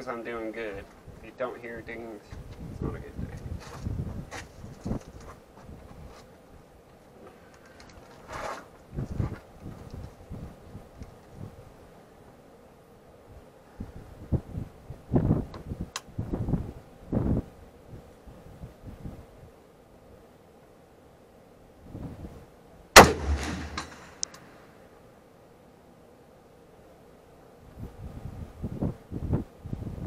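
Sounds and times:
wind buffeting microphone: 2.3s - 6.1s, 8.9s - 11.6s, 13.8s - 19.3s, 27.8s - 30.0s
rifle shot with echo: 23.0s - 24.2s.

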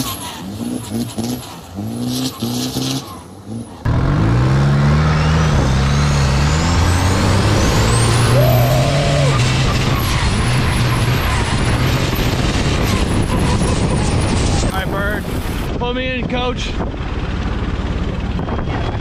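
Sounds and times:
turbocharger whine: 0.0s - 15.8s
boat diesel engine running: 14.8s - 19.0s.

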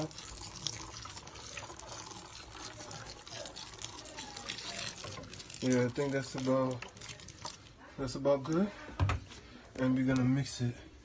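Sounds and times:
water pouring onto soil: 0.0s - 7.7s.

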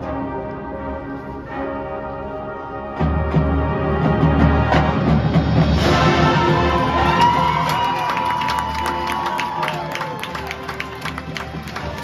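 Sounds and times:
marching band playing chords: 0.0s - 12.0s.

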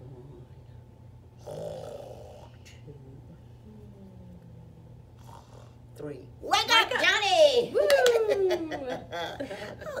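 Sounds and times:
steady low hum: 0.0s - 10.0s
person pretend snoring: 1.4s - 3.1s.

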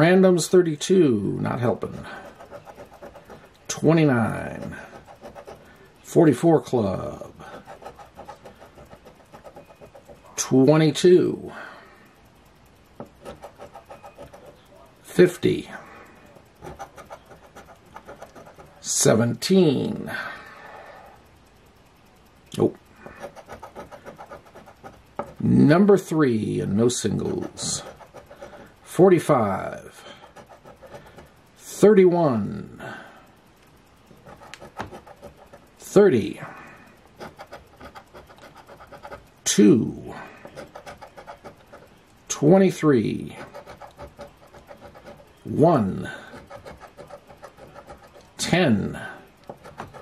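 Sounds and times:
coin scraping lottery ticket: 1.5s - 10.9s, 13.0s - 15.6s, 16.3s - 19.0s, 23.0s - 29.5s, 30.2s - 31.2s, 34.1s - 36.1s, 37.2s - 39.2s, 40.4s - 50.0s.

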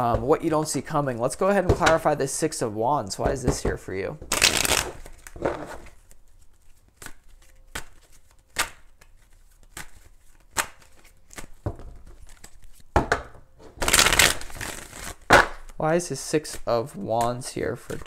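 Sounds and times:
cards shuffling: 4.3s - 12.9s, 13.6s - 18.0s
cards snapping and tapping: 6.9s - 12.6s.

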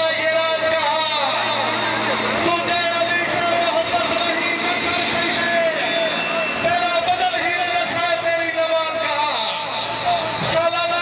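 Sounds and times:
man chanting over loudspeaker: 0.0s - 1.8s, 2.4s - 11.0s.

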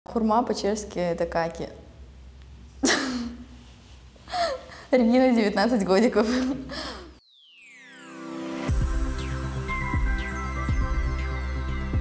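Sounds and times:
woman laughing: 2.8s - 3.4s, 6.2s - 7.1s.

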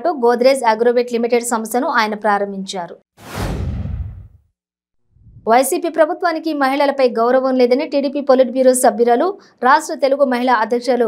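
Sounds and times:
whoosh sound effect: 3.2s - 4.5s, 5.1s - 5.6s.

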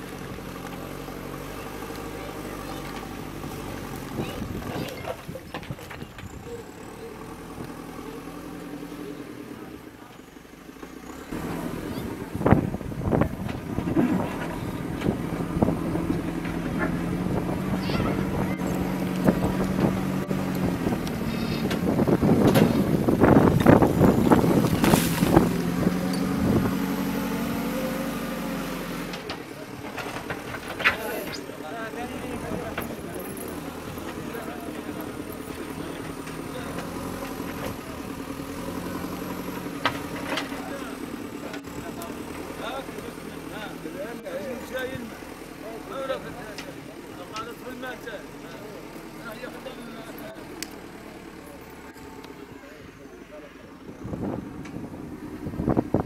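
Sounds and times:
diesel engine running: 0.0s - 56.0s
voices in background: 0.5s - 56.0s.

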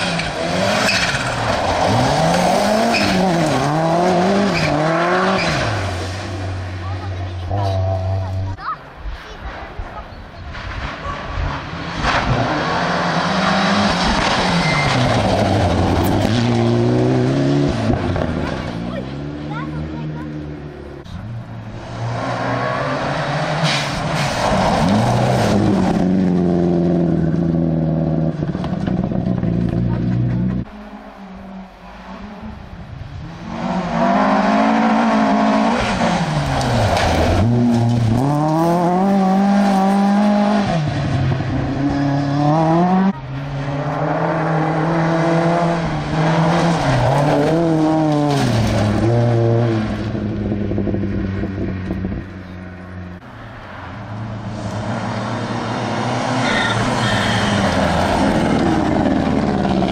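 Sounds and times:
rally car engine revving: 0.0s - 8.6s, 9.5s - 59.9s.

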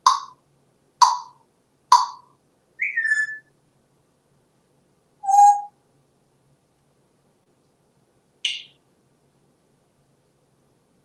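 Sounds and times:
parrot whistling: 2.8s - 3.5s, 5.2s - 5.7s.

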